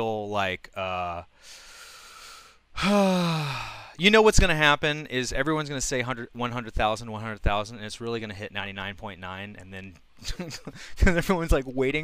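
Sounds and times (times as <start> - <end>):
man breathing in: 1.3 - 4.0, 10.7 - 11.0
man sighing: 1.4 - 4.0.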